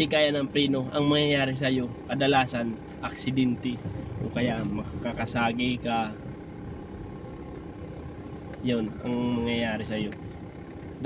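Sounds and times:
car rumble from inside cabin: 0.0s - 11.0s.

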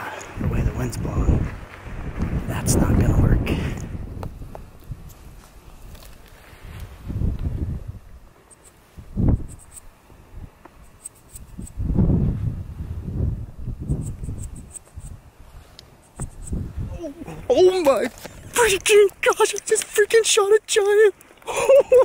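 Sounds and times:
wind gusting against microphone: 0.0s - 20.1s.

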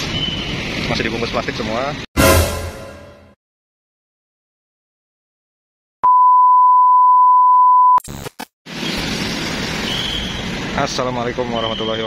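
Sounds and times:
steady test-tone beep: 6.0s - 8.0s.

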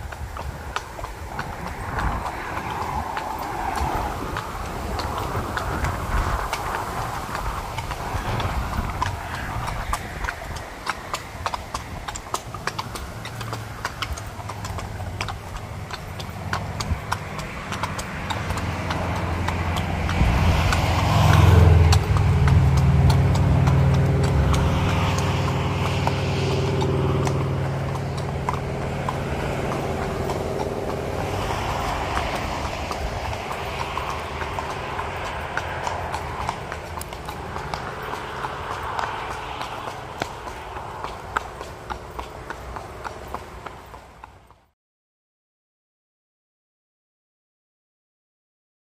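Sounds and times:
horse hooves on pavement: 0.0s - 44.7s
low engine hum: 0.0s - 44.7s.

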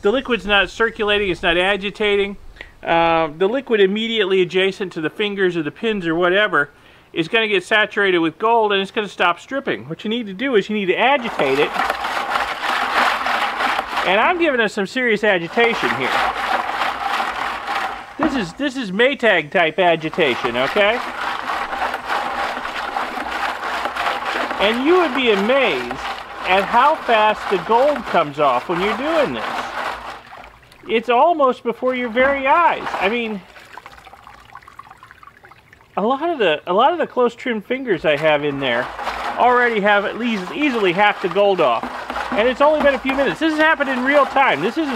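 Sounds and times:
liquid sloshing in a bucket: 10.3s - 44.9s.

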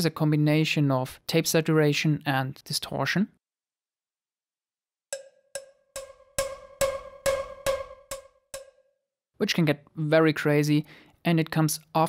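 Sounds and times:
distorted cowbell hits: 5.2s - 8.8s.

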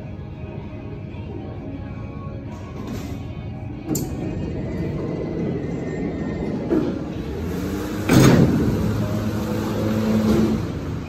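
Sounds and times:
elevator doors opening rumble: 3.8s - 11.0s
loud clunk: 8.0s - 8.8s.

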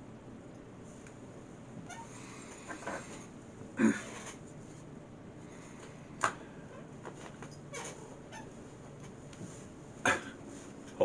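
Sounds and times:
small pet squeaking: 1.8s - 2.2s.

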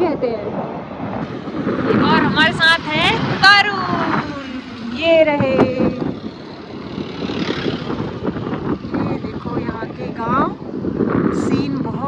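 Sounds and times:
motorcycle engine running: 1.2s - 12.0s.

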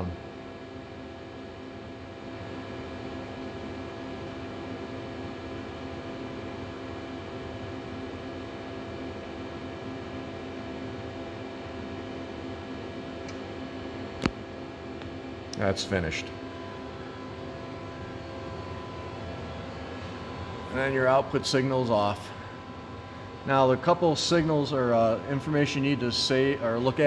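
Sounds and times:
machine hum and fan noise: 0.0s - 27.0s.

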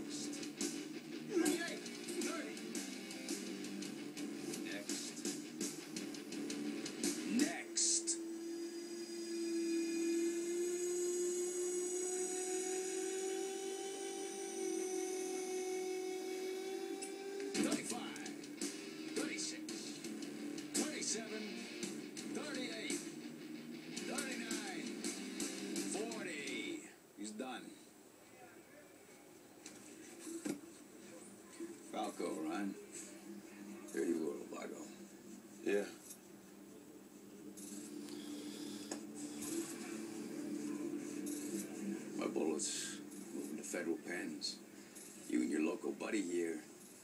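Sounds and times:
dramatic tv score: 0.0s - 47.0s
long held tone: 8.0s - 17.4s.

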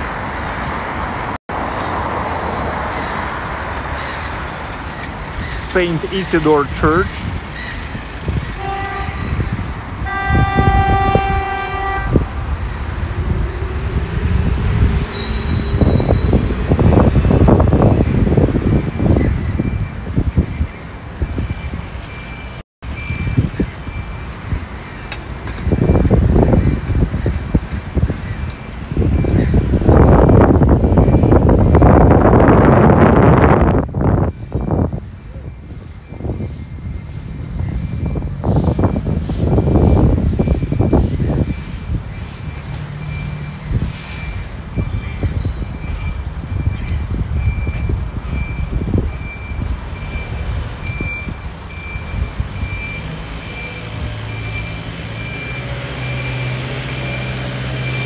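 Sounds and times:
road traffic: 0.0s - 58.0s
vehicle horn: 8.6s - 12.6s.

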